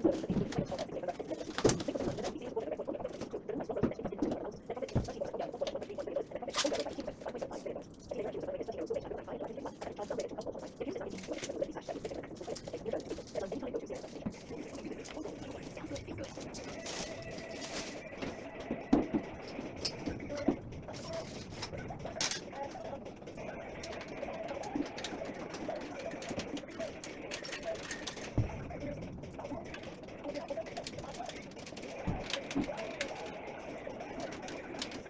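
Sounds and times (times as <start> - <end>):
heavy thumps: 28.2 - 30.2.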